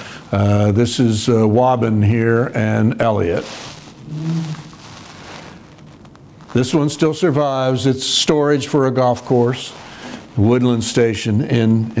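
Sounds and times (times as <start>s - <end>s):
room background noise: 0.0s - 12.0s
man humming mm: 4.0s - 4.7s.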